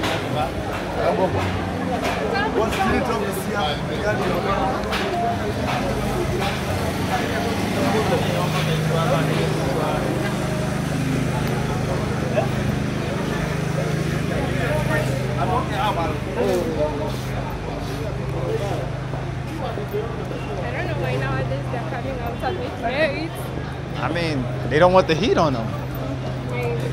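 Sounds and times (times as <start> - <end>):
chatter of passers-by: 0.0 - 26.9.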